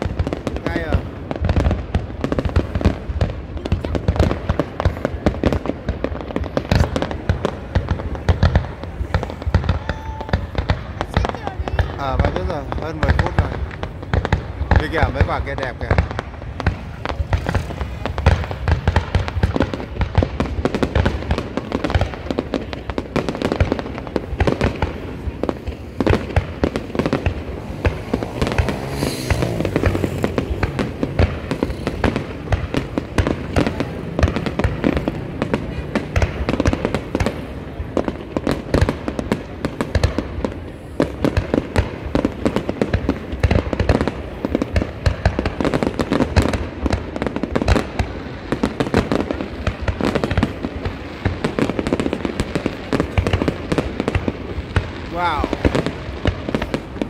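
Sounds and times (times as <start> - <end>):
fireworks bursting and crackling: 0.0 - 57.0.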